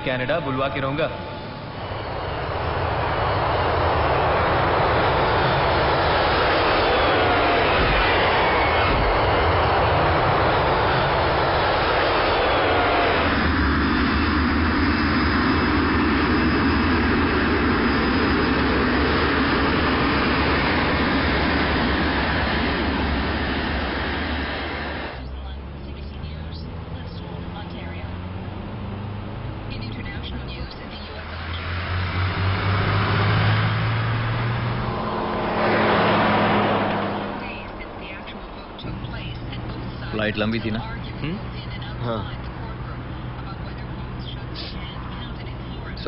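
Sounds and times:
faint gliding whines: 0.0s - 46.0s
propeller plane engines running: 0.0s - 46.0s.

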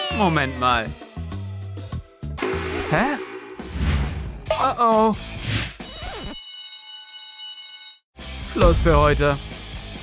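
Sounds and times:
school bell buzzing: 6.4s - 8.0s.

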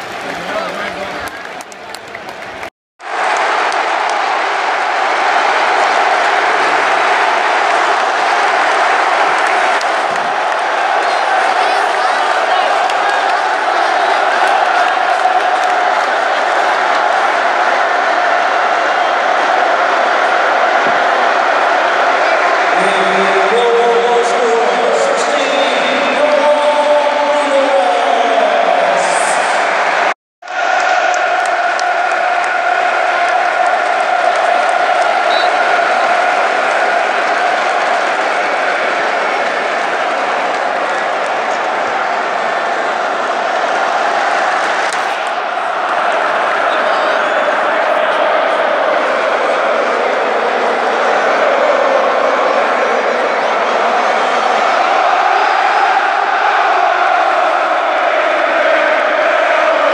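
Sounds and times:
stadium crowd chanting: 2.6s - 59.9s.

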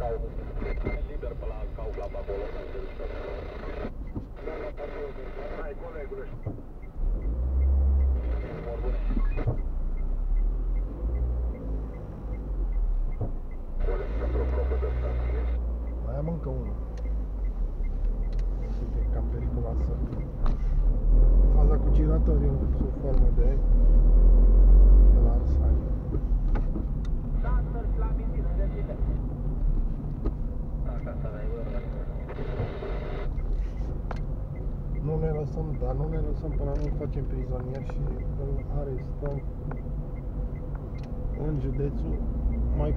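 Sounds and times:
muffled talk: 0.0s - 6.4s, 13.8s - 16.7s
voices talking: 0.0s - 7.4s, 8.0s - 10.1s, 13.2s - 20.5s, 27.4s - 29.3s, 30.8s - 42.9s
car engine and road rumble: 0.0s - 42.9s.

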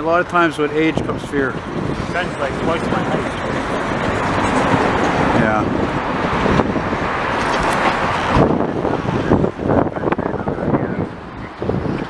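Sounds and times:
freight train rumbling past: 0.0s - 12.0s.

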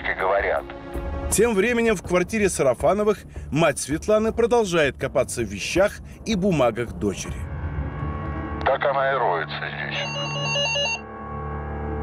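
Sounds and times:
background music drone: 0.0s - 12.0s
electronic doorbell trilling: 10.0s - 11.1s.

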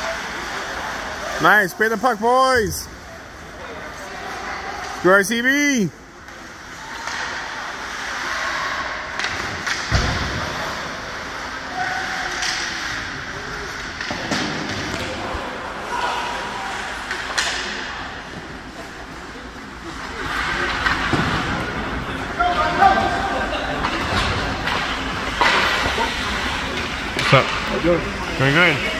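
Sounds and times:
distant voices of players and spectators: 0.0s - 28.9s
hockey sticks and puck knocking: 9.1s - 10.4s, 13.7s - 15.3s, 17.0s - 19.2s, 23.8s - 27.8s.

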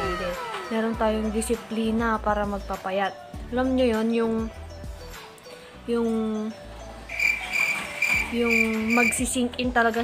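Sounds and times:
cricket chirping: 7.1s - 9.2s.

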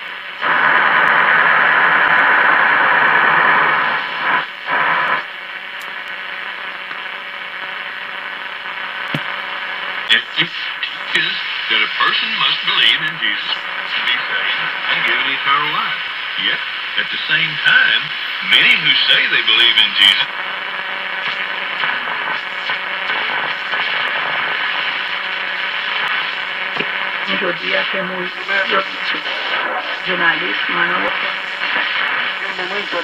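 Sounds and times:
radio static hiss: 0.0s - 33.0s
muffled radio voice: 10.1s - 20.3s, 26.8s - 33.0s.

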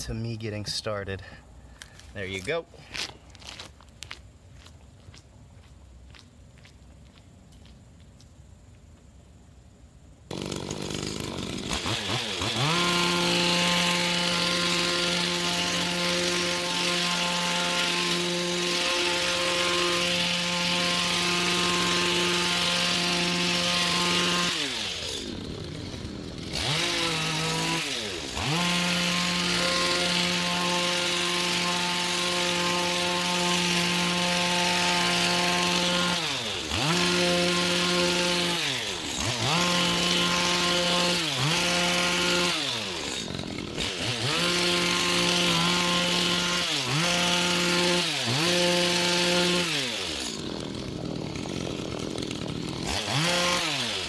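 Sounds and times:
hedge trimmer engine revving: 10.3s - 54.0s.

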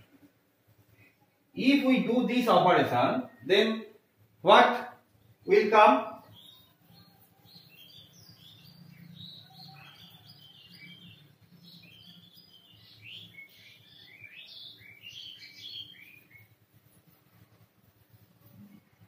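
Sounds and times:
high chirps and squeaks: 5.5s - 17.0s.

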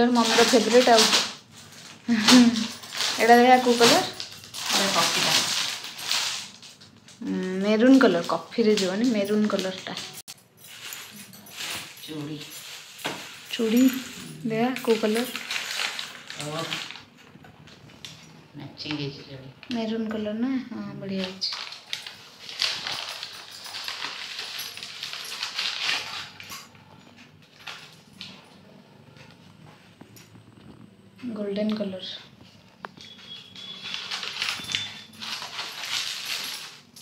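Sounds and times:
plastic bags and newspaper rustling: 0.0s - 37.0s
paper packet handling: 32.9s - 36.9s.

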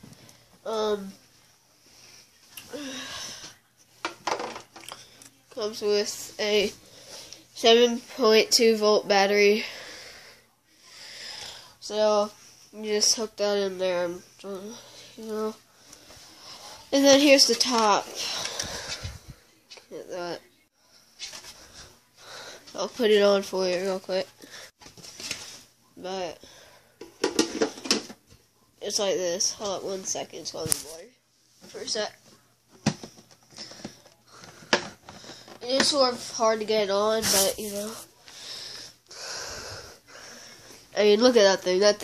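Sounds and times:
person breathing: 1.9s - 3.6s, 6.8s - 7.5s, 9.6s - 11.8s, 18.1s - 19.6s, 33.5s - 35.6s, 38.1s - 41.0s
rustling plastic handling noise: 24.8s - 25.7s.

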